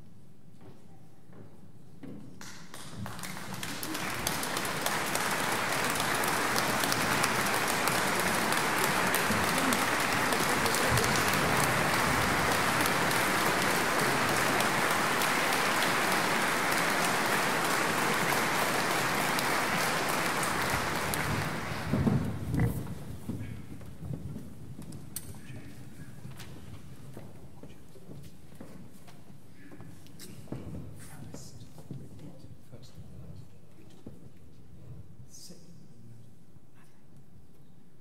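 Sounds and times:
audience applause: 0:02.7 - 0:22.9.

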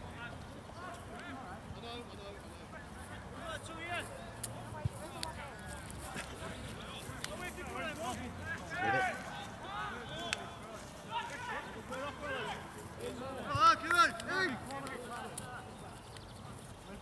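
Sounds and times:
footballers shouting: 0:06.2 - 0:16.0.

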